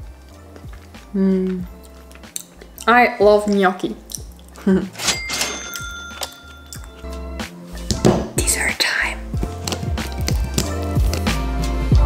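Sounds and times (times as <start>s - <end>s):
background music with bass line: 0.0s - 5.0s, 6.8s - 12.0s
person whispering: 8.4s - 9.3s.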